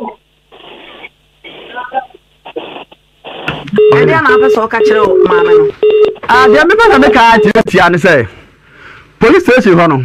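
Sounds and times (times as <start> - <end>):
studio voice speaking: 3.7 - 8.0.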